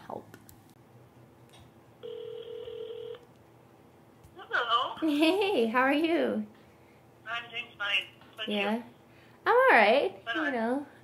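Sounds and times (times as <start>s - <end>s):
phone ringing tone: 2.0s - 3.2s.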